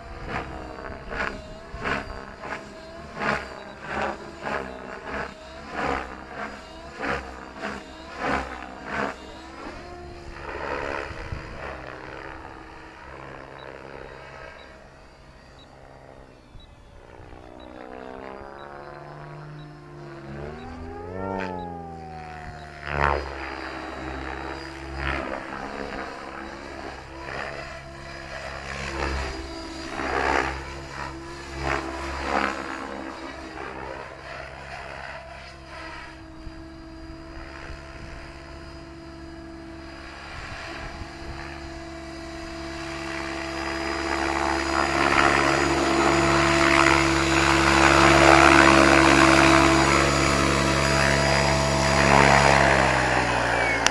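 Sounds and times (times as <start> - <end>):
helicopter motor and rotor whine: 0.0 - 53.9.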